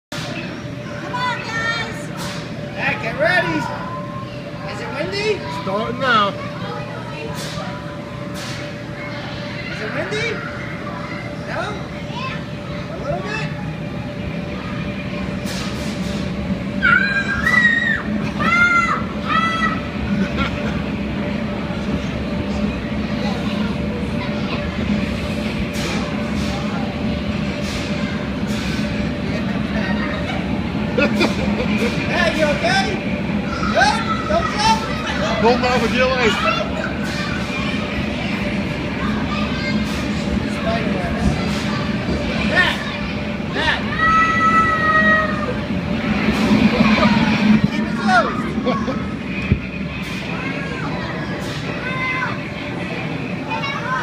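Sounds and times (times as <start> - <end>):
blower fan rushing air: 0.1 - 54.0
children shouting and squealing: 8.9 - 11.4, 16.7 - 20.0, 33.4 - 35.4, 41.4 - 49.2, 50.3 - 52.8.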